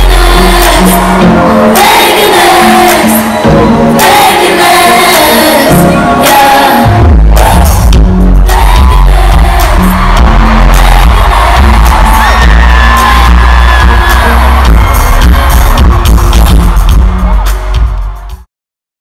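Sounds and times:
crowd singing along: 0.0 - 15.9
loud live pop music: 0.0 - 18.5
person singing: 0.0 - 18.5.

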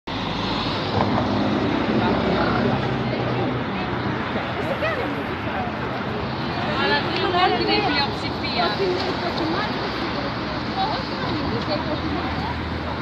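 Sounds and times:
steady outdoor rumble: 0.1 - 13.0
faint voices: 0.8 - 13.0.

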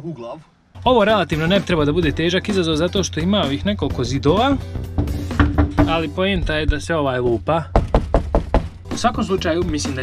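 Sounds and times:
background music: 0.8 - 10.0
man talking: 5.8 - 7.7.

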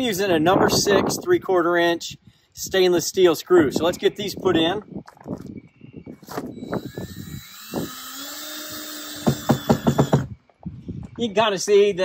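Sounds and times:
cordless drill motor whining: 5.4 - 11.1.

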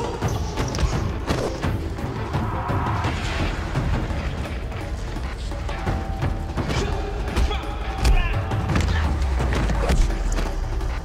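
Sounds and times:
action film music with deep bass: 0.0 - 11.0.

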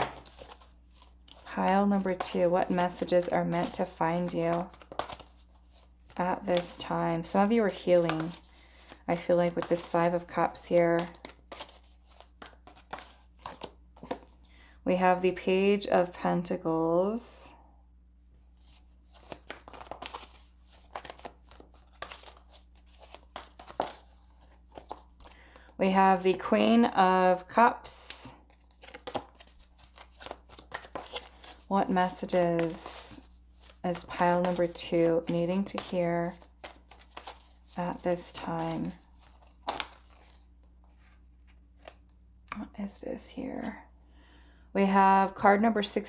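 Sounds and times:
cards shuffling: 0.0 - 14.4, 18.5 - 26.4, 28.5 - 42.2
low steady hum: 0.0 - 46.0.

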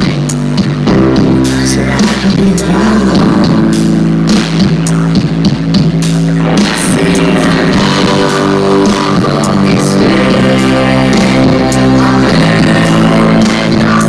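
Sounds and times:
drum kit: 0.0 - 14.0
electric guitar: 0.0 - 14.0.

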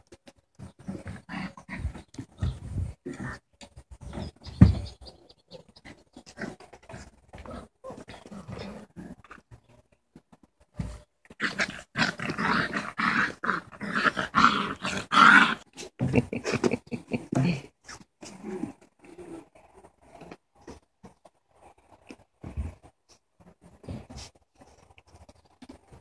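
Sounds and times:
puppies growling: 0.6 - 3.4, 5.8 - 9.6, 11.4 - 17.4
scattered small noises: 17.8 - 26.0.

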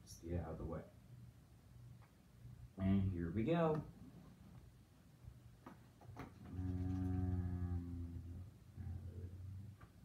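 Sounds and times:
person humming low note: 6.5 - 9.8.

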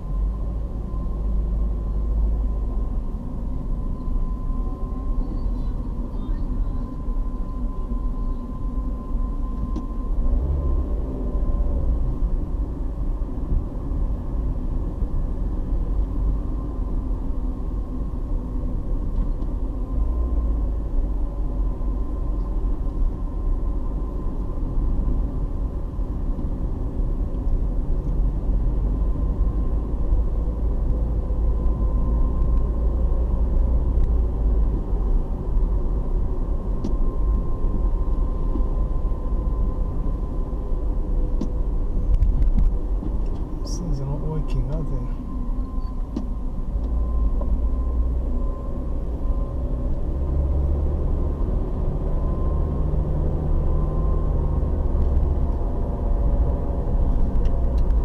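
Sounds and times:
car road and engine rumble: 0.0 - 58.0
faint steady whine: 0.0 - 58.0.

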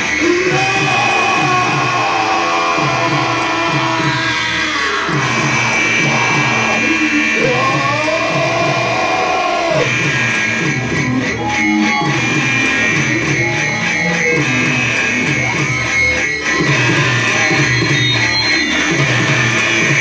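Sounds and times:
loud live band music: 0.0 - 20.0
low thudding beat: 0.0 - 20.0.

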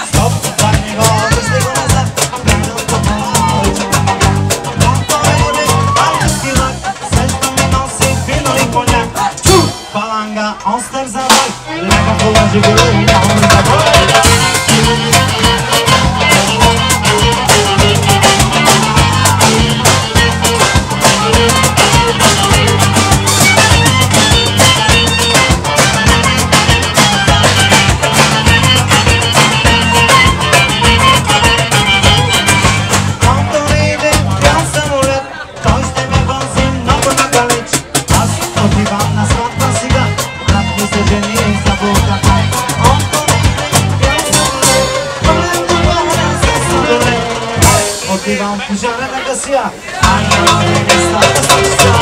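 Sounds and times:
fiddle: 0.0 - 9.3, 11.6 - 52.0
electric guitar: 0.0 - 10.2, 11.2 - 49.3, 50.0 - 52.0
bass: 0.0 - 52.0
drums: 0.0 - 52.0
live band playing dance tune: 0.0 - 52.0.

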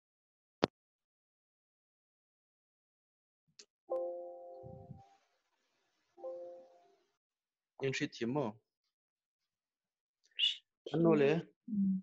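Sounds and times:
man speaking: 7.8 - 8.5, 10.4 - 11.4.

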